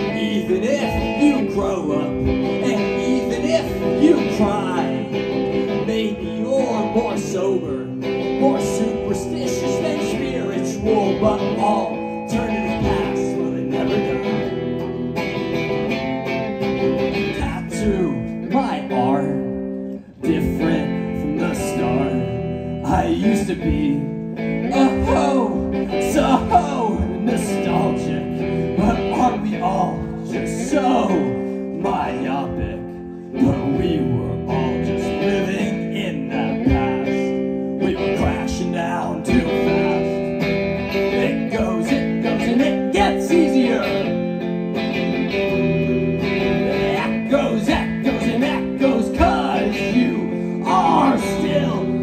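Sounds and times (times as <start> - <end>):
man singing: 0.0 - 14.9, 17.0 - 52.0
guitar with bending pitch: 0.0 - 52.0.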